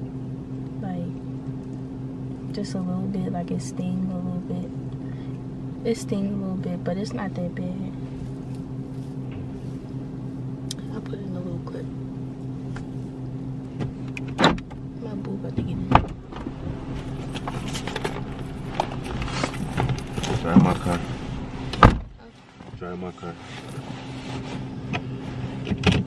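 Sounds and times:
car engine idling: 0.0 - 26.0
clicks and knocks in car: 13.8 - 14.9, 21.7 - 22.8, 24.9 - 26.0.

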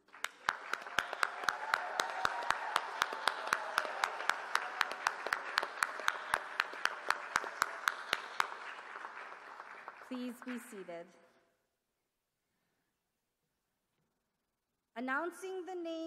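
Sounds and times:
close hand claps: 0.0 - 10.9
crowd applauding in a hall: 0.0 - 10.9.

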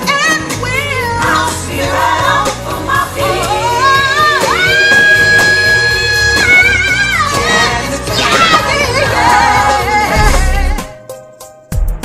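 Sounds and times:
female vocal trio singing: 0.9 - 10.9
backing band playing: 1.2 - 11.0.

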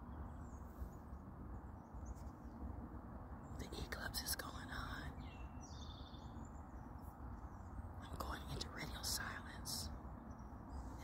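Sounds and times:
outdoor background noise: 0.0 - 11.0
woman whispering: 3.6 - 5.2, 8.0 - 10.0.

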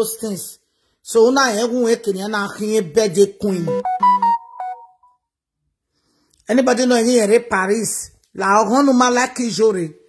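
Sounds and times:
electronic notification chime: 3.6 - 5.1.

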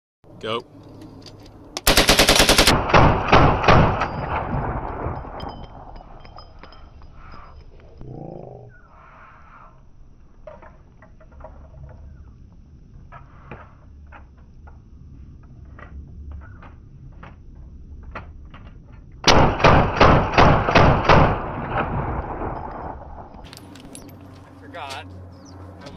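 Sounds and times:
rifle full-auto burst: 1.8 - 4.1, 19.3 - 22.5.

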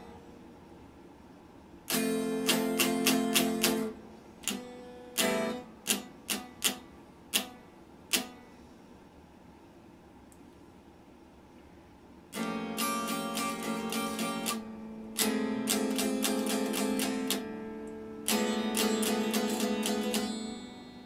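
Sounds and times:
electric guitar strumming: 1.9 - 8.5, 12.3 - 21.0.

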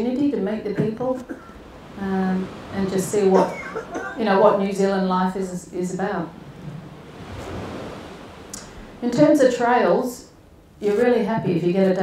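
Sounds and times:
rushing air on microphone: 1.6 - 4.9, 6.3 - 9.1.

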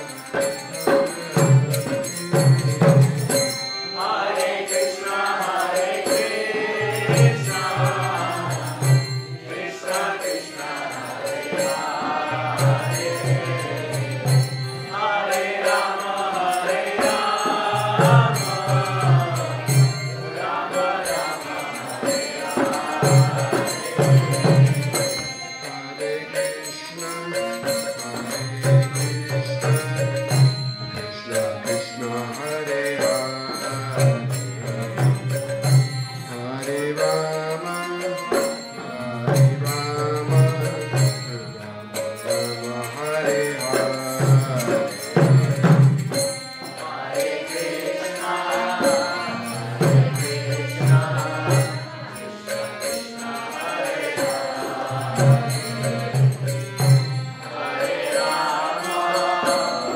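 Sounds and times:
harmonium sustained notes: 0.0 - 59.9
group chanting: 3.2 - 26.5, 42.7 - 59.9.

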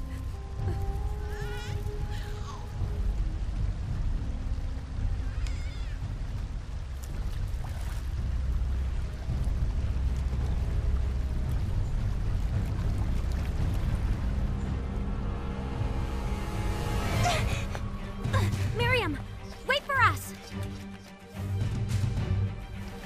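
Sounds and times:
film score with held notes: 0.0 - 23.0.

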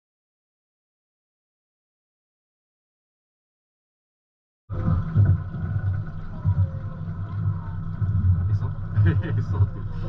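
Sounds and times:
boat engine rumble: 4.7 - 10.0.

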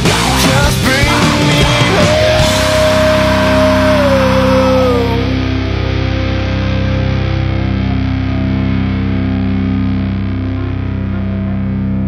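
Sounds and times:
distorted electric guitar: 0.0 - 12.0
heavy rock music: 0.0 - 12.0.

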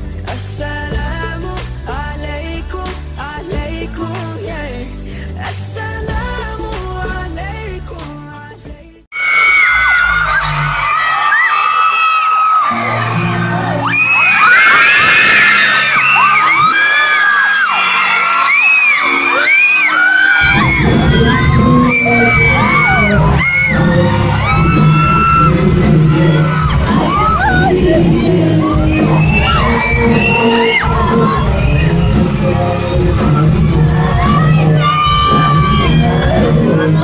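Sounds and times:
amplified pop music: 0.0 - 37.0
crowd screaming and cheering: 9.1 - 37.0.

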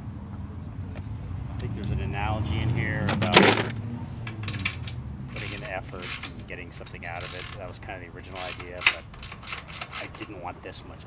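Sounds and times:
ratchet wrench clicking: 4.3 - 7.7, 8.4 - 10.3.

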